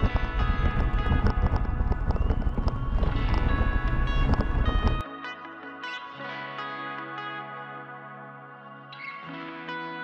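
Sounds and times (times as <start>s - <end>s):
wind rumble on camera: 0.0s - 5.0s
background music: 0.0s - 10.0s.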